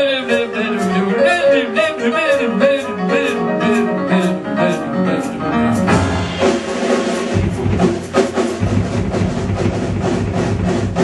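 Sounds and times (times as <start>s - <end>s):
drum kit: 0.0s - 11.0s
live jazz band playing: 0.0s - 11.0s.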